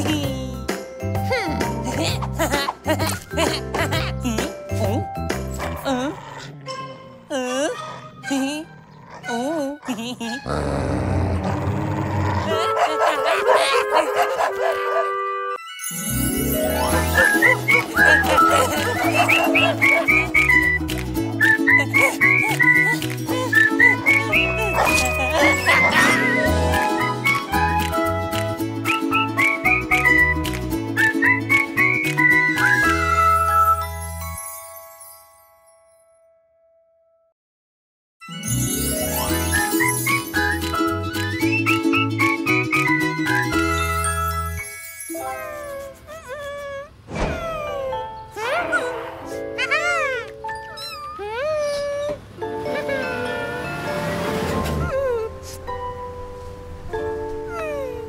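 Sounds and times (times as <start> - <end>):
cartoon background music: 0.0 - 36.1, 38.2 - 58.0
cartoon animal vocal effect: 5.8 - 14.0, 45.1 - 53.9
cartoon kitten meowing: 49.6 - 52.2.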